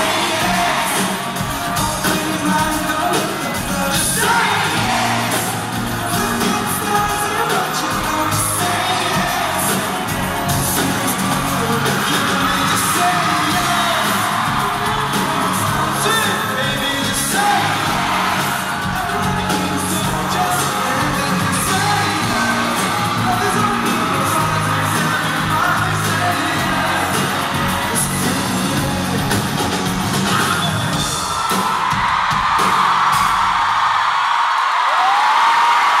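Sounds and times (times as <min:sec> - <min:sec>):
live pop-rock band with singer: 0:00.0 - 0:33.5
crowd whooping and cheering: 0:00.0 - 0:36.0.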